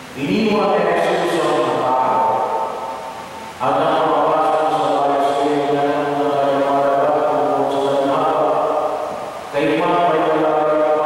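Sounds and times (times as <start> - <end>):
man chanting into microphone: 3.6 - 11.0.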